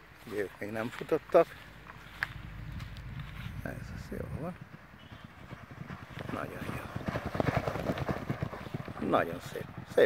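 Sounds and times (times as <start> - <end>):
horses galloping on sand: 0.3 - 10.0
wind buffeting microphone: 1.5 - 10.0.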